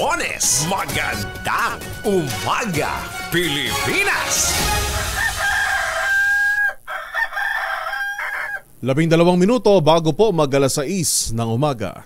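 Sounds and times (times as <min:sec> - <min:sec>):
rooster crowing: 0:04.7 - 0:08.7.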